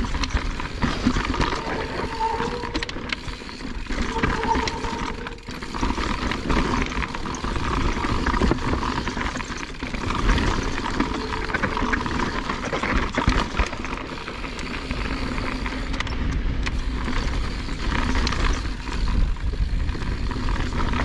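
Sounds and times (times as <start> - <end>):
bike rattling and knocking: 0.0 - 21.0.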